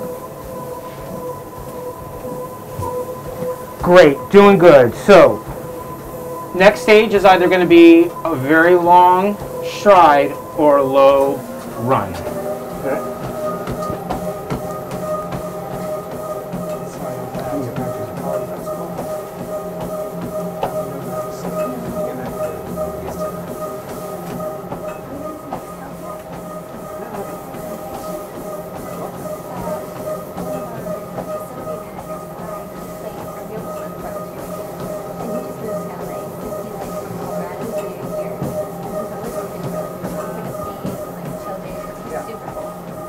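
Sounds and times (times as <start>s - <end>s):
treadmill motor whine: 0.0s - 43.0s
footfalls on treadmill belt: 0.1s - 4.6s, 8.7s - 43.0s.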